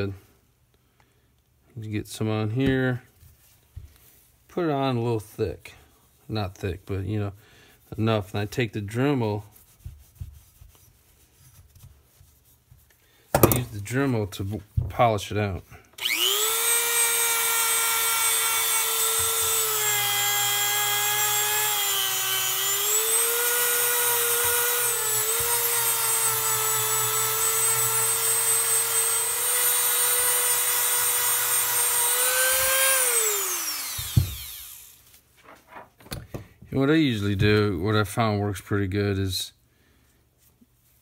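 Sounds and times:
rotary tool high whine: 16.0 - 35.0.

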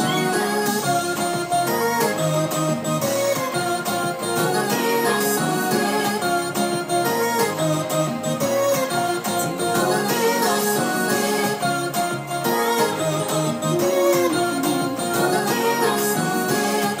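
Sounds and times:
keyboard playing chords and melody: 0.0 - 17.0.

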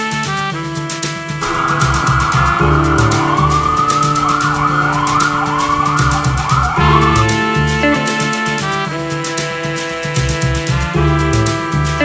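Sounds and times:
background music with a beat: 0.0 - 12.0
emergency vehicle siren: 1.4 - 9.1.

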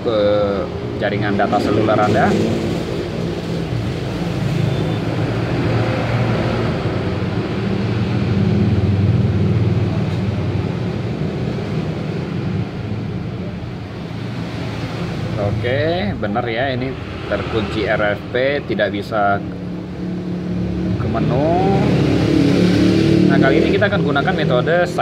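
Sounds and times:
low mechanical drone: 0.0 - 24.9.

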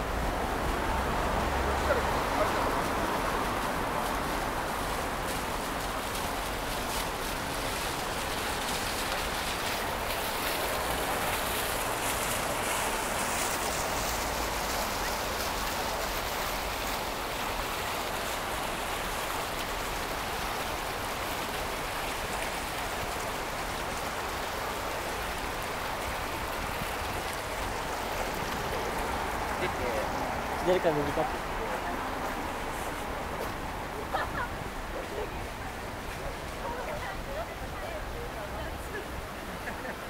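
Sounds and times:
fountain water splashing: 0.0 - 40.0.

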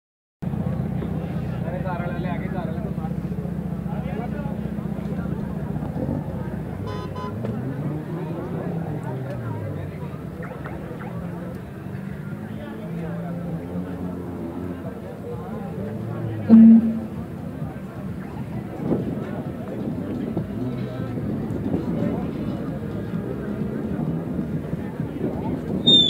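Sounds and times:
vehicle engine humming: 0.4 - 26.0
people talking: 0.5 - 26.0
brief high tone: 16.5 - 17.2.

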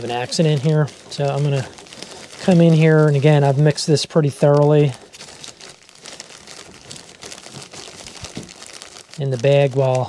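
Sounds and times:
dried soil shifting: 0.0 - 10.0
plastic bag crinkling: 0.0 - 10.0.

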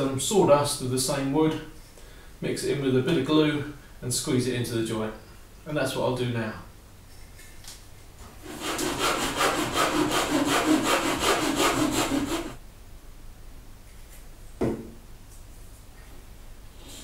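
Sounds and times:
hand saw cutting wood: 8.4 - 12.6
short knock: 14.6 - 15.0.

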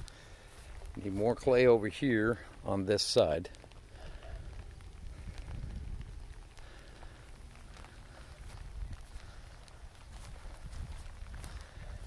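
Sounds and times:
faint crackles: 0.0 - 12.0
wind rumbling on microphone: 3.5 - 12.0
footsteps squelching in mud: 6.6 - 12.0.

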